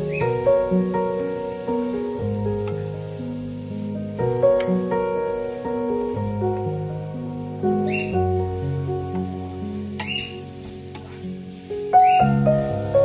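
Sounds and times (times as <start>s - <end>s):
onion sizzling in oil: 0.0s - 13.0s
soft background music: 0.0s - 13.0s
wooden spatula scraping: 10.0s - 12.1s.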